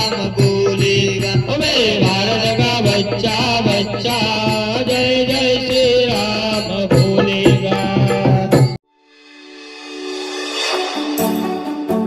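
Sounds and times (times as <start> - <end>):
lead singer on microphone: 0.0 - 8.8
rhythmic percussion: 0.0 - 12.0.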